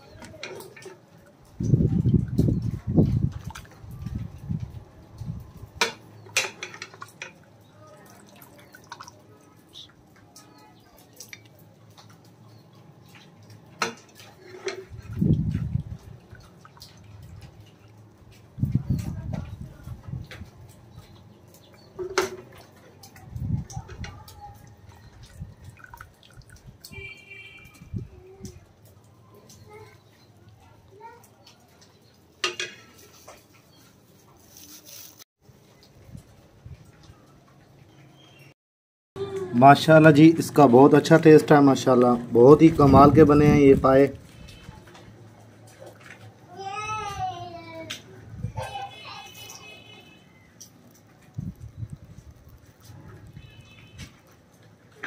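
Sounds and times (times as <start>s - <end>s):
liquid pouring and dripping: 0.1s - 38.0s, 47.8s - 55.0s.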